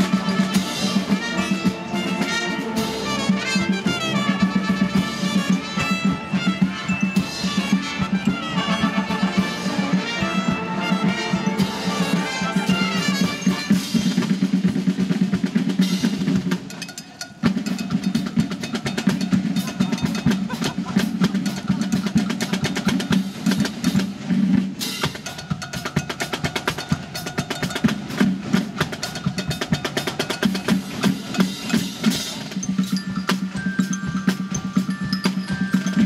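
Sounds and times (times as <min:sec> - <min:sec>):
snare drum cadence with rolls: 0:00.0 - 0:36.0.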